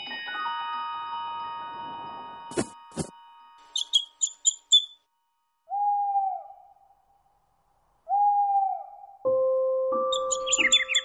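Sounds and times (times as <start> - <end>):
high bird chirps: 3.6 - 5.0, 10.1 - 11.0
owl hoot: 8.1 - 9.2.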